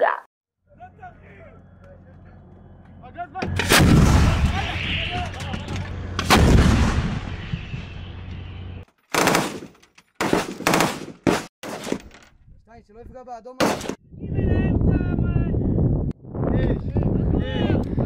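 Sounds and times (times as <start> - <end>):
howitzer blast with rumble: 3.4 - 8.8
machine-gun bursts: 9.1 - 11.1.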